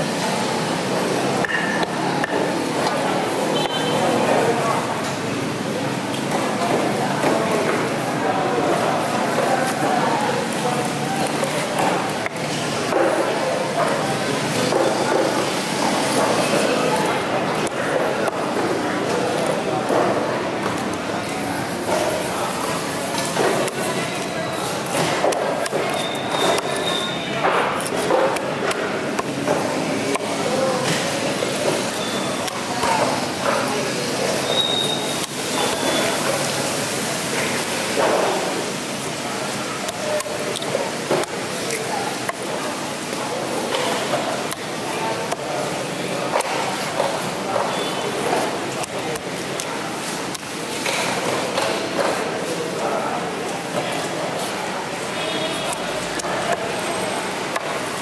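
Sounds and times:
indistinct voices: 0.0 - 58.0.

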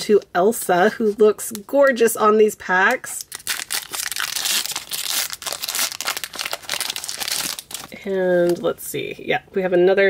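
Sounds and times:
foil wrapper crinkling and tearing: 3.0 - 8.6.

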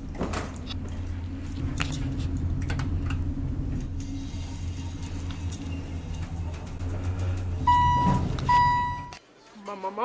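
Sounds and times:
elevator humming: 0.0 - 9.2
electronic beeps: 7.7 - 9.2.

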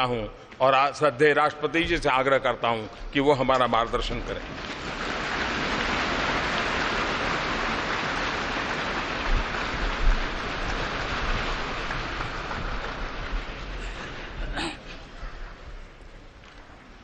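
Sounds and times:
audience applauding: 3.8 - 17.0.

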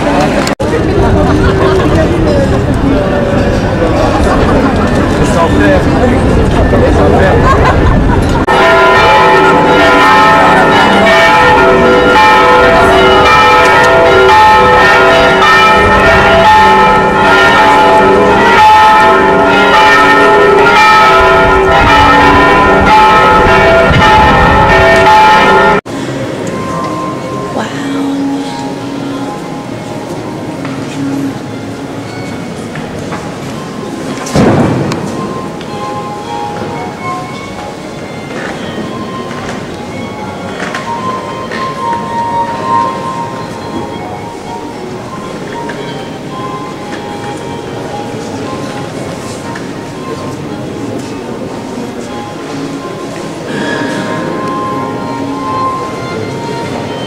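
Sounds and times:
church bells pealing: 0.0 - 57.0
loud rumbling thump: 34.4 - 35.2.

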